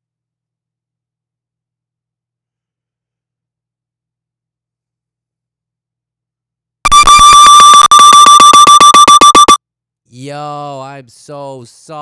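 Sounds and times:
audio feedback squeal: 6.9s - 9.6s.

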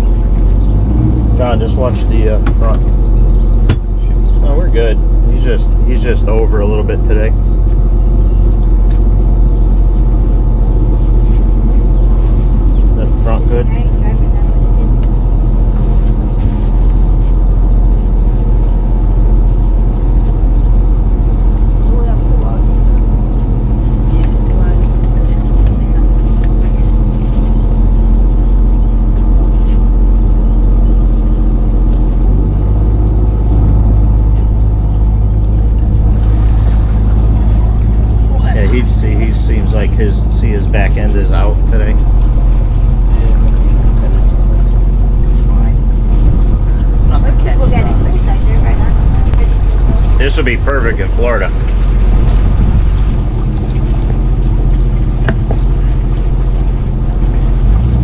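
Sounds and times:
boat engine running: 0.0s - 58.0s.

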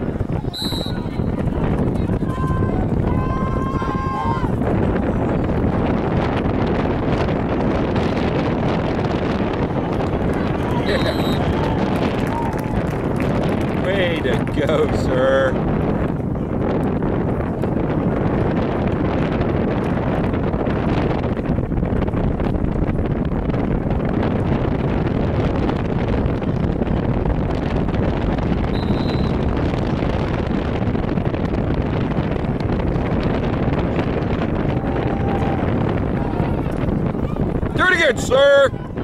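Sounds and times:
wind blowing across microphone: 0.0s - 39.0s.

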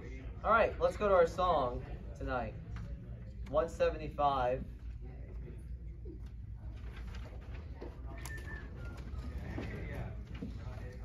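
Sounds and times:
book pages turning: 6.2s - 11.0s.

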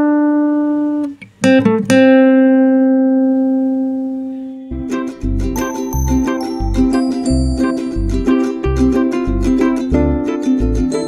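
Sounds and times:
acoustic guitar note ringing: 4.7s - 11.0s.

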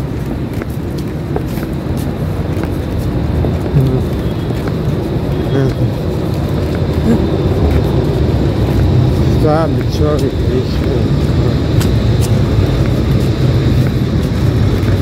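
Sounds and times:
city traffic rumble: 0.0s - 15.0s
snatches of voices: 3.7s - 4.2s.

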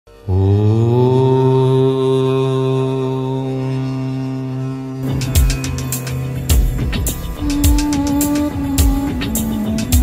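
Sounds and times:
deep voice chanting: 0.1s - 5.6s, 7.3s - 10.0s.

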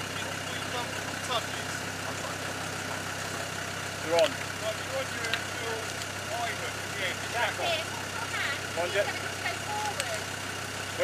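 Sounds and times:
diesel engine idling: 0.0s - 11.0s
voices calling out: 0.0s - 11.0s.

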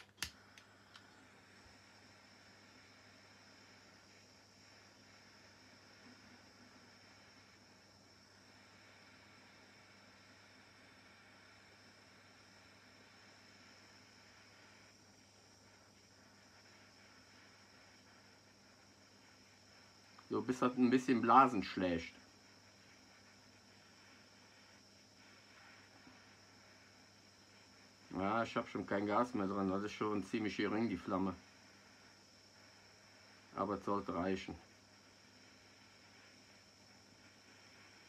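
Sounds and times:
torch igniter clicks: 0.0s - 1.2s
gas flame hissing: 0.0s - 38.0s.

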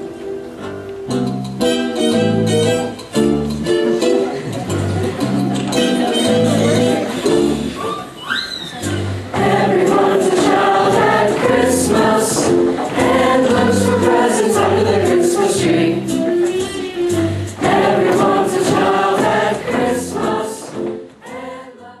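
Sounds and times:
choir singing with instruments: 9.3s - 22.0s.

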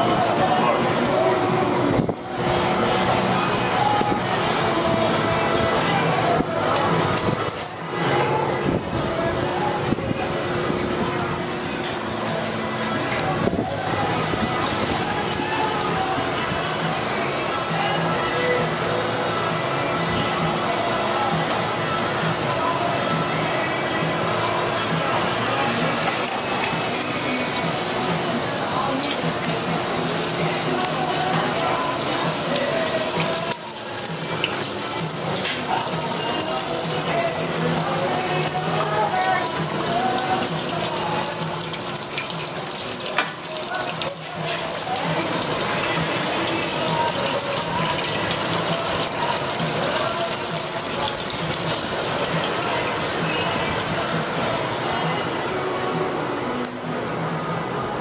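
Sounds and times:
faint indistinct voices: 0.0s - 58.0s
gas burners roaring: 0.0s - 58.0s.

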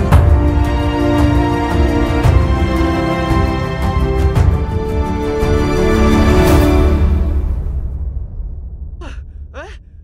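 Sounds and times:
person crying out falling pitch: 9.0s - 9.8s.

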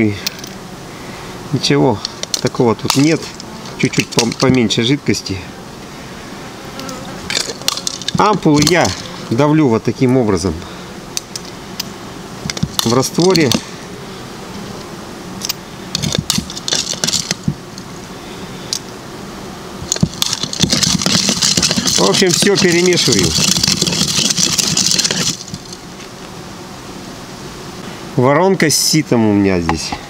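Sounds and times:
honeybees buzzing: 0.0s - 30.0s
glass ampoules cracking: 7.3s - 9.3s, 15.4s - 17.4s, 19.9s - 25.8s.

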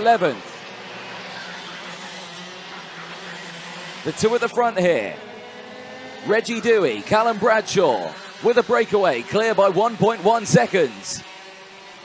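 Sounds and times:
racing kart engines droning: 0.0s - 12.0s.

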